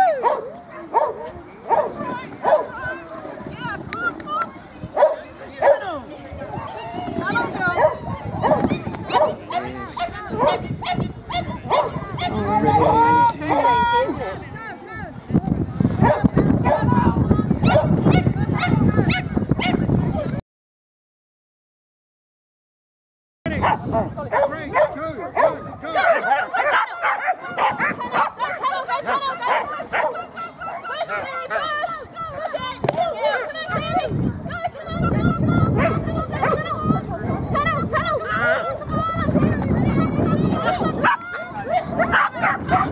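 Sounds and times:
dog barking: 0.2s - 2.8s, 5.0s - 5.9s, 7.8s - 13.0s, 16.0s - 16.9s, 17.6s - 19.8s, 23.6s - 28.7s, 29.4s - 30.2s, 35.8s - 36.6s, 41.0s - 42.9s
dogs yelping and barking: 23.6s - 31.8s, 35.7s - 37.4s, 40.6s - 42.9s.

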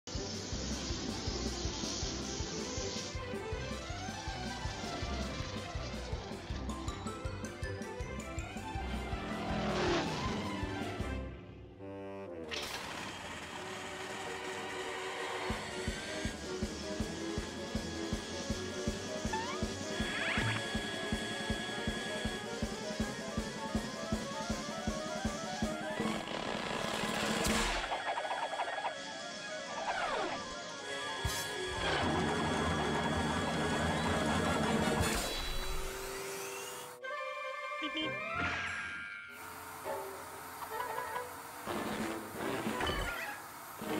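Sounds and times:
cartoon soundtrack music: 0.6s - 12.8s, 14.1s - 39.1s
falling pitched glide: 8.9s - 11.2s
steady drum beat: 15.9s - 25.9s
cartoon music: 18.8s - 26.2s, 37.0s - 39.0s.

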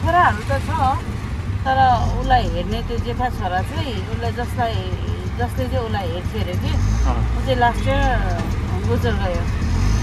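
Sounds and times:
rickshaw engine and road rumble: 0.0s - 10.0s
person talking: 1.7s - 9.5s.

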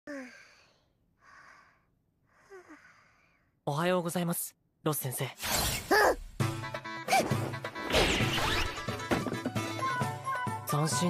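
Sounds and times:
girl sighing: 0.1s - 3.3s.

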